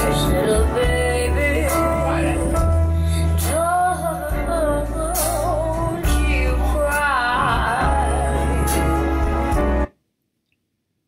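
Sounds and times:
bass: 0.0 - 9.9
keyboard chords: 0.0 - 9.9
live band playing: 0.0 - 9.9.

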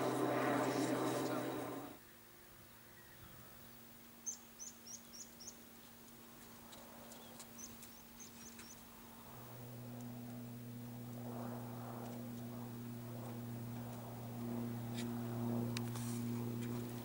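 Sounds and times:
low steady hum: 0.0 - 2.0, 8.9 - 17.0.

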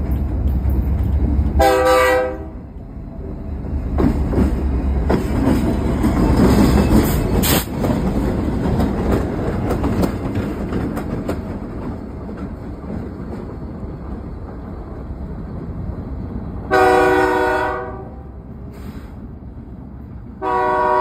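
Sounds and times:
diesel locomotive engine rumble: 0.0 - 21.0
wheels clicking over rails: 3.6 - 15.2.

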